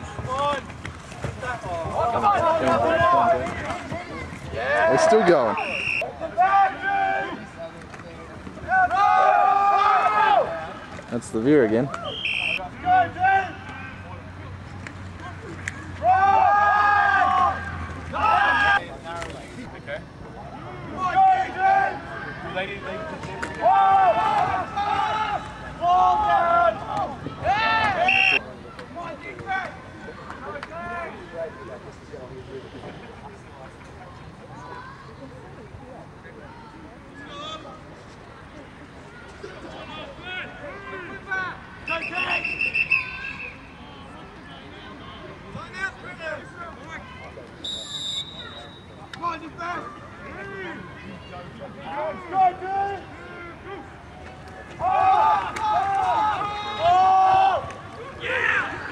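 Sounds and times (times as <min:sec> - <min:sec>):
people shouting and yelling: 0:00.0 - 0:07.6, 0:08.6 - 0:14.4, 0:15.2 - 0:19.0, 0:20.5 - 0:31.9, 0:39.1 - 0:58.9
referee's whistle blowing: 0:05.5 - 0:06.1, 0:12.0 - 0:12.6, 0:28.0 - 0:28.4, 0:41.8 - 0:43.7, 0:47.6 - 0:49.1, 0:56.5 - 0:57.1
higher-pitched whistle: 0:05.6 - 0:06.0, 0:12.1 - 0:12.6, 0:28.0 - 0:28.4, 0:41.8 - 0:43.6, 0:47.6 - 0:49.0.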